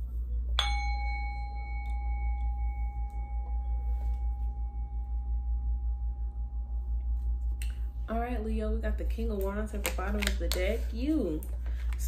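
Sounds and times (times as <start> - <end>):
low steady hum: 0.0 - 12.0
small metal instrument ringing: 0.6 - 7.1.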